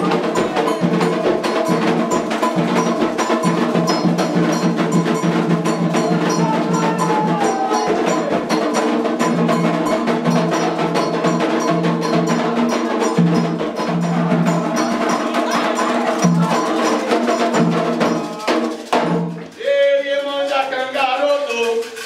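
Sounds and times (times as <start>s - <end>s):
hand drums: 0.0s - 22.0s
voices singing: 0.0s - 22.0s.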